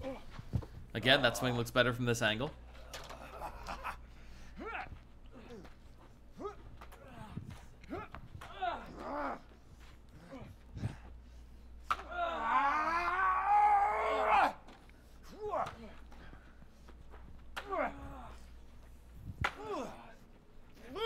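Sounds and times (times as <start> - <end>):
people grunting and exclaiming: 2.7 - 11.1, 11.9 - 16.3, 17.6 - 18.5, 19.4 - 20.2, 20.8 - 21.0
loud long yell: 12.0 - 14.6.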